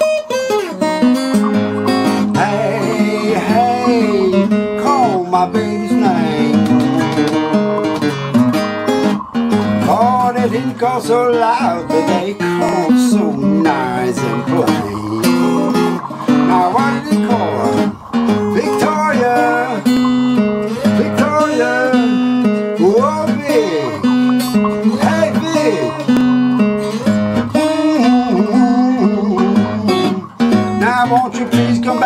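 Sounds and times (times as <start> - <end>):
acoustic guitar chords: 0.0 - 32.0
sliding guitar lead line: 0.0 - 32.0.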